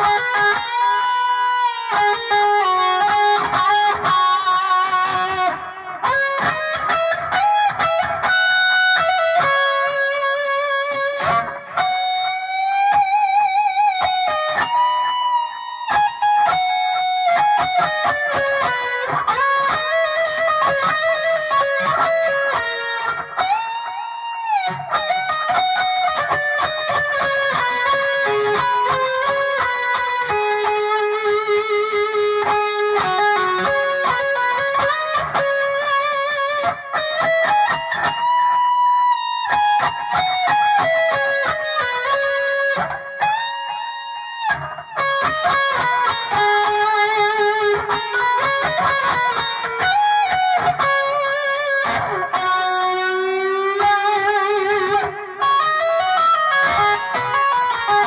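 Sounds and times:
electric guitar lead solo: 0.0s - 58.0s.

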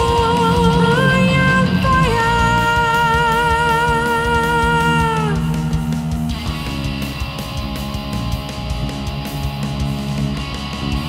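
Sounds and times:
heavy metal guitars and drums: 0.0s - 11.0s.

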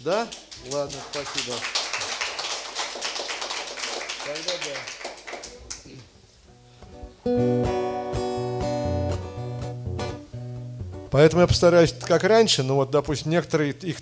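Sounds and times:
strummed acoustic guitar chords: 6.5s - 11.6s.

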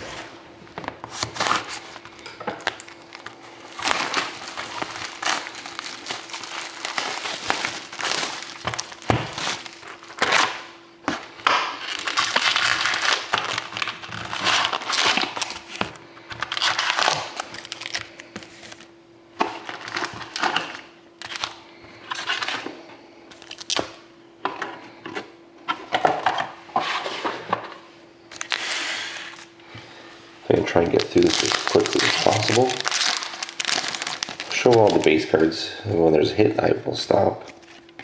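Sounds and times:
card packs crinkling and rustling: 0.0s - 22.7s, 23.3s - 24.0s, 28.3s - 29.6s, 30.5s - 35.6s.

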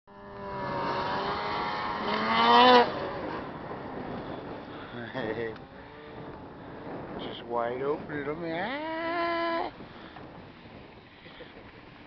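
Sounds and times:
snowmobile engine revving: 0.1s - 7.2s.

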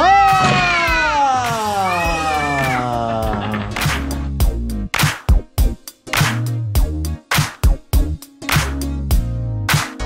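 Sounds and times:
child's long vocal cry: 0.0s - 3.3s.

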